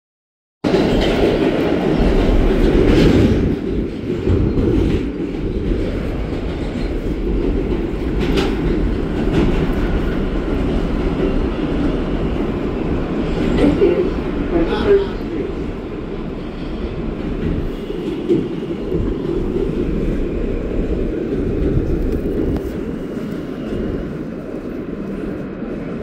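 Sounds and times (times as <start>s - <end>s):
subway train wheels rumbling: 0.6s - 26.0s
wheels clacking on rail: 0.6s - 26.0s.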